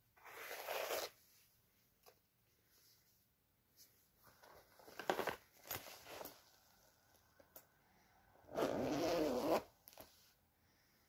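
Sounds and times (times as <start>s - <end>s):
zipper rasp: 0.2s - 1.2s, 8.5s - 10.0s.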